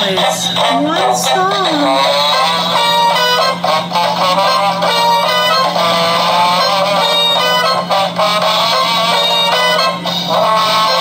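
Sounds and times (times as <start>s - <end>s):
toy radio playing bright tune: 0.0s - 11.0s.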